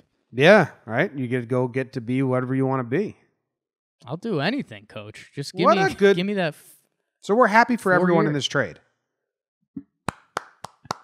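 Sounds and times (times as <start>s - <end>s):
hand clapping: 10.0s - 11.0s.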